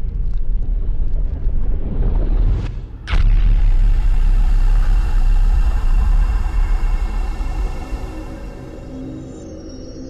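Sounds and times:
low rumble: 0.0s - 9.8s
sudden hit: 2.4s - 8.9s.

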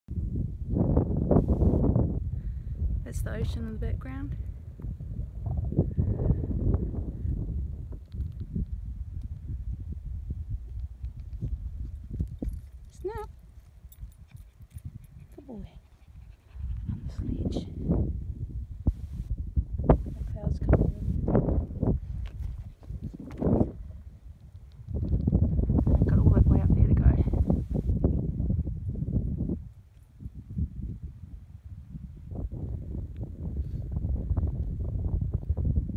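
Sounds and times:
wind buffeting microphone: 0.1s - 35.9s.

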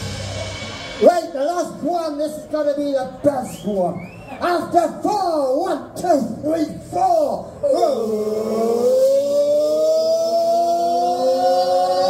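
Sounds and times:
live band playing: 0.0s - 4.4s.

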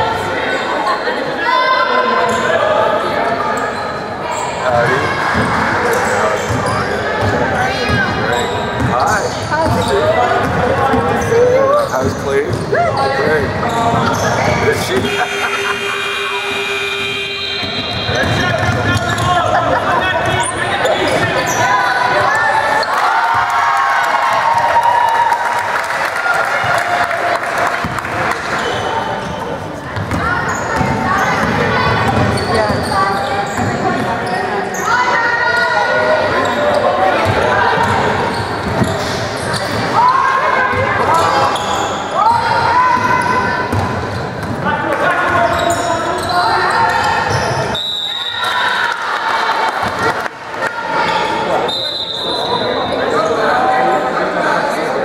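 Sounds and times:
indistinct voices: 0.0s - 24.0s.

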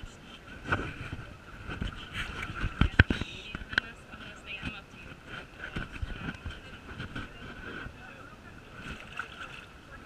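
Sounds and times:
background murmur: 0.0s - 10.0s
knocks and rubbing on camera: 0.6s - 8.0s.

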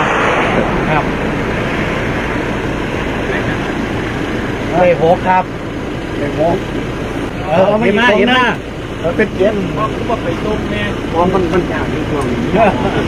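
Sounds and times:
pickup truck engine idling: 0.7s - 13.0s.

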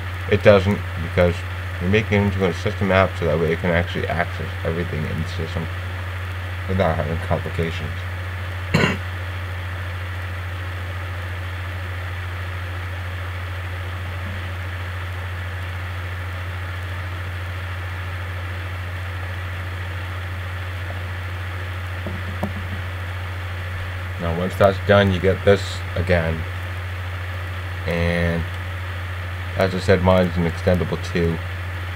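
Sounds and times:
low electrical hum: 0.0s - 31.9s
steady hiss: 0.0s - 31.9s.

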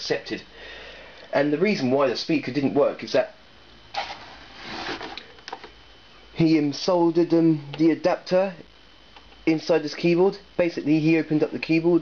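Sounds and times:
soft handling rustle: 4.0s - 5.7s.

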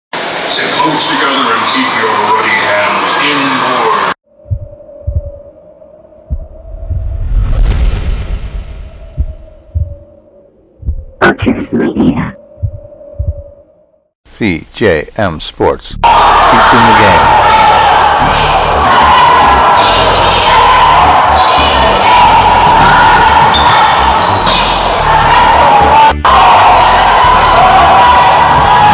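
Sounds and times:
deep heartbeat-like thumps: 4.4s - 5.5s, 6.3s - 10.2s, 10.8s - 13.6s.

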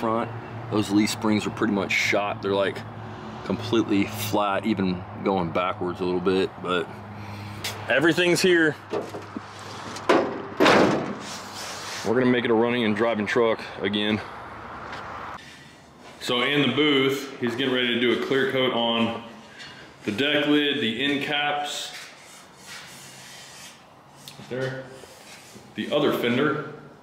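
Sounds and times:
car hood slamming shut: 10.1s - 11.2s
cloth rubbing on painted metal: 11.2s - 12.3s, 21.7s - 26.4s.

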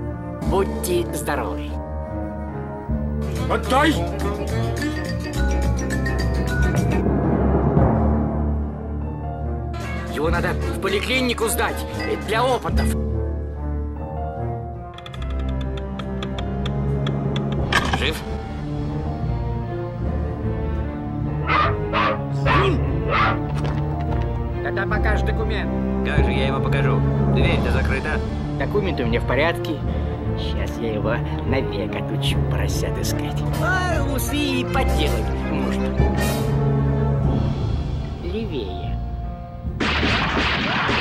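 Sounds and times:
cartoon soundtrack music: 0.4s - 13.1s, 14.5s - 41.0s
cartoon dog barking: 21.4s - 23.4s.

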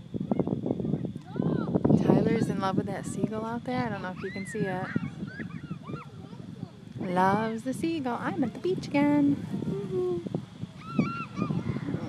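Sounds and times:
gull calling: 3.9s - 6.4s, 9.6s - 12.0s.

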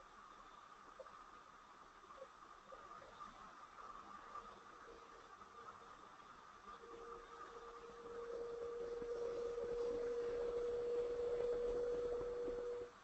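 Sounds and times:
steady mid-pitched hum: 0.0s - 13.0s.

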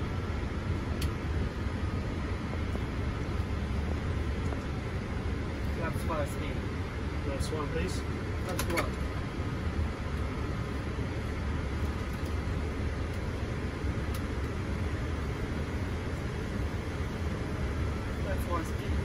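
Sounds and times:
airflow and engine rumble: 0.0s - 19.0s.

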